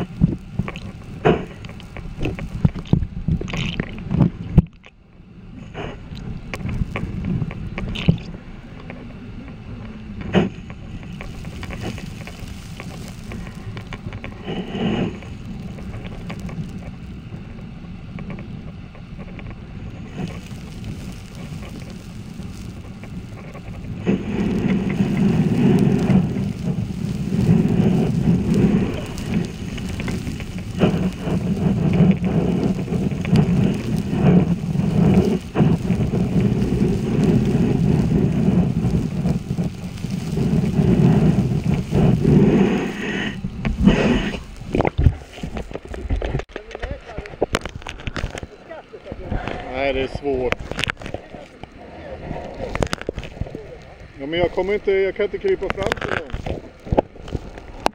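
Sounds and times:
muffled underwater river rushing: 0.0 - 57.9.

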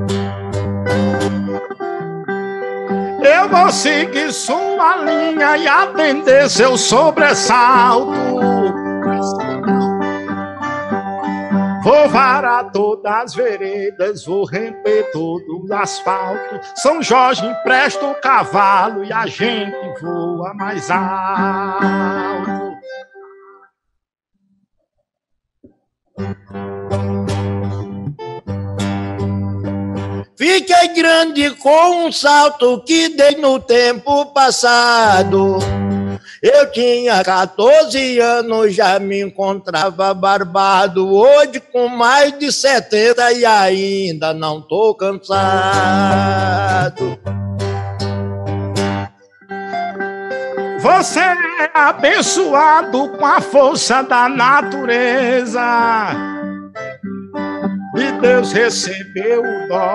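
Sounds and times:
plucked guitar notes: 0.0 - 23.7, 26.2 - 32.1, 32.9 - 36.4, 45.3 - 59.9
person singing: 2.9 - 23.6, 30.4 - 47.3, 49.6 - 56.6, 57.9 - 59.9.

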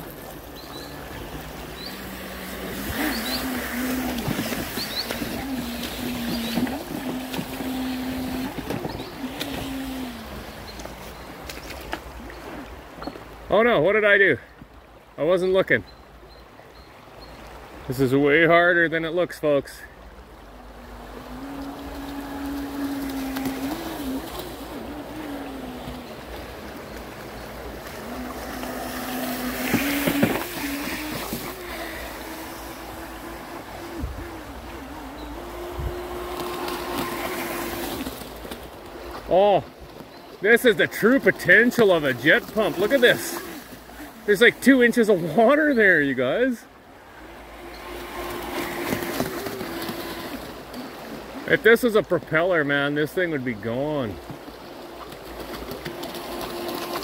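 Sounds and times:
model jetboat motor whining: 0.0 - 13.4, 19.6 - 57.0
stream rushing: 0.0 - 57.0.

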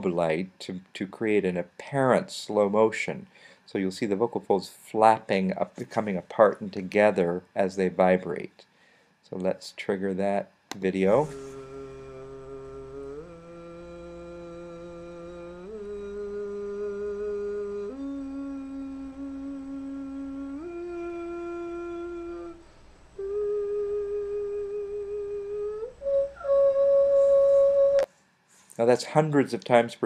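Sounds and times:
person holding sustained vocal tones: 10.9 - 28.1.

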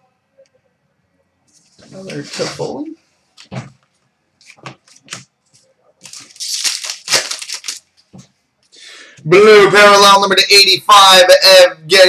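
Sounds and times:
cards rustling and scraping: 3.4 - 7.8.

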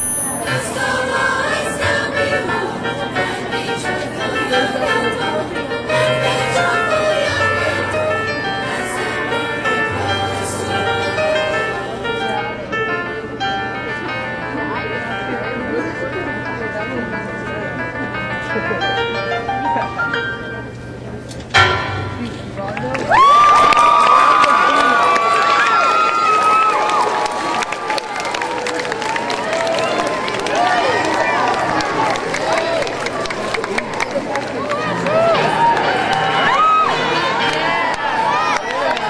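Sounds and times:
children's choir singing: 0.0 - 12.6
crowd chatter: 0.0 - 39.0.

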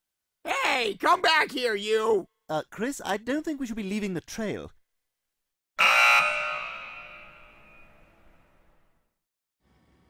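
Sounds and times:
loud ringing sound effect: 5.8 - 8.5.

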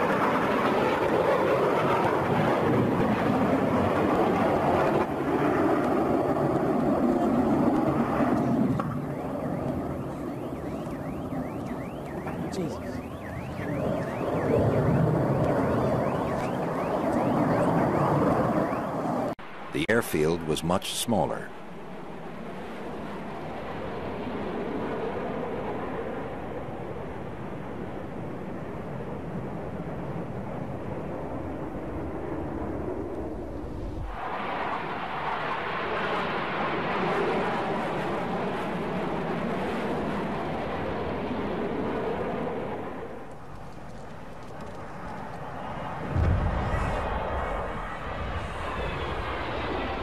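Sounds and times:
airplane engine rushing: 0.0 - 50.0
loud low rumble: 46.0 - 50.0.

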